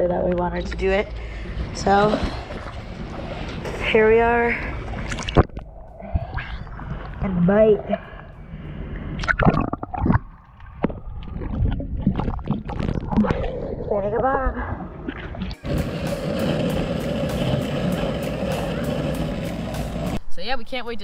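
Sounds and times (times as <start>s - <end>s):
wheels clicking over cracks: 15.5s - 20.2s
longboard wheels rolling on asphalt: 15.6s - 20.2s.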